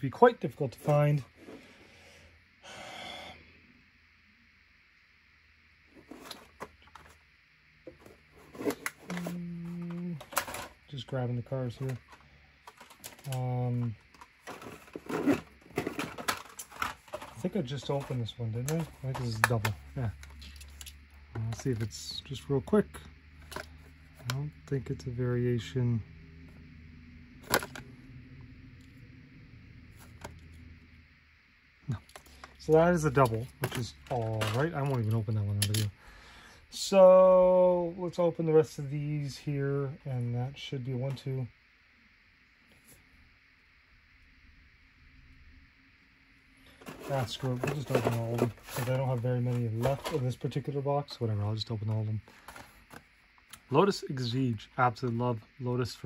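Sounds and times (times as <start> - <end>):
low hum: 0.4 - 56.0
breath close to microphone: 1.5 - 3.5, 36.0 - 36.7.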